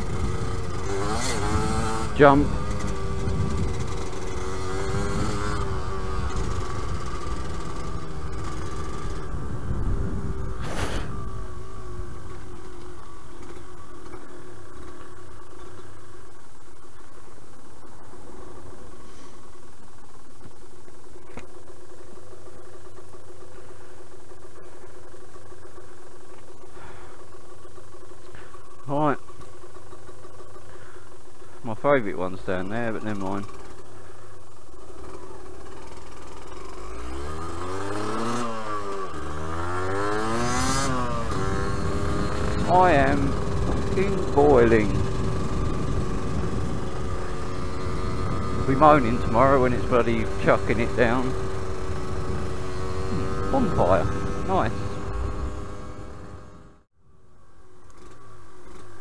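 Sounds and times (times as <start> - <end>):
motorcycle engine idling: 0.0 - 59.0
short loud rush: 10.6 - 11.3.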